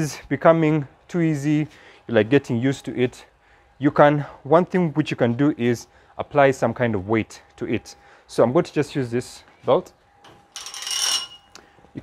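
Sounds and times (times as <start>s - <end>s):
metal chain jingling: 10.6s - 11.6s.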